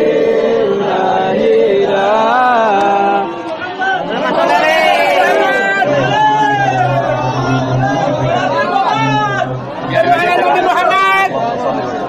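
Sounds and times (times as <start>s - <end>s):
voices chanting a devotional melody: 0.0s - 12.0s.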